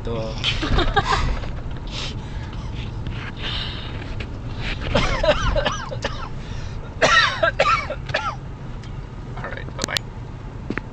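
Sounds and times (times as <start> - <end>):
low road rumble: 0.0 - 10.9
people laughing: 0.4 - 1.9.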